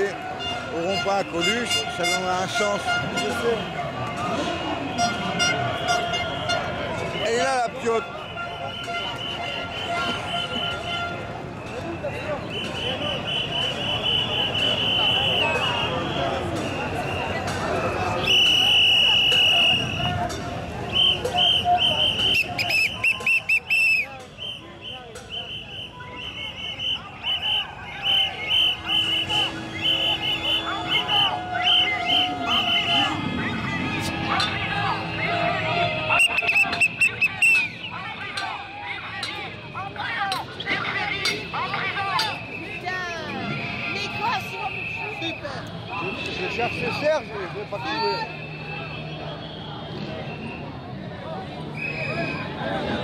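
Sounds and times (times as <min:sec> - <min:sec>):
crowd chatter: 0:00.0 - 0:53.0
whistle blasts: 0:08.0 - 0:10.9, 0:11.6 - 0:38.6, 0:40.6 - 0:50.8, 0:51.7 - 0:52.6.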